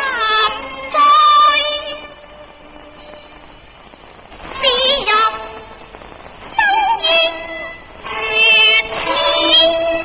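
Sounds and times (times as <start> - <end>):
woman singing opera style: 0.0 - 2.2, 4.5 - 5.6, 6.5 - 10.0.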